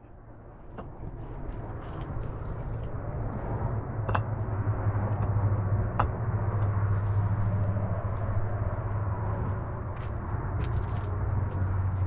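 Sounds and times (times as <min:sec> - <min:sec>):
stone knocking on stone: 0:04.1 - 0:04.3.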